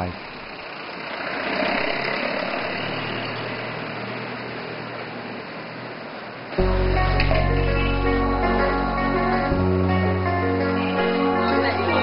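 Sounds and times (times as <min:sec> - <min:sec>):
distant traffic rumble: 0:00.0 - 0:12.0
background music: 0:06.6 - 0:12.0.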